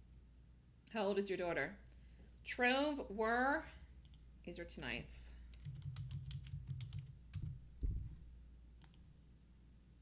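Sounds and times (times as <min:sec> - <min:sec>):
computer keyboard typing: 0:05.5 - 0:07.6, 0:08.8 - 0:09.0
low thump: 0:07.8 - 0:08.2.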